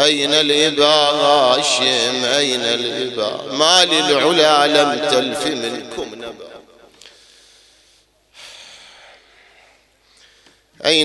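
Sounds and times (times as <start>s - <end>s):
man's voice: 0.0s - 6.8s, 10.8s - 11.0s
man drawing a breath: 7.0s - 10.7s.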